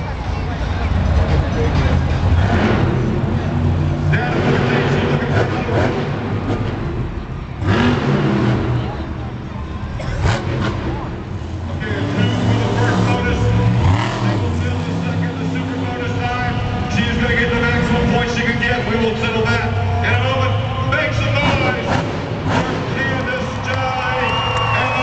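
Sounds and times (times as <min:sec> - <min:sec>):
monster truck engine revving: 0:00.0 - 0:25.0
voices: 0:08.7 - 0:25.0.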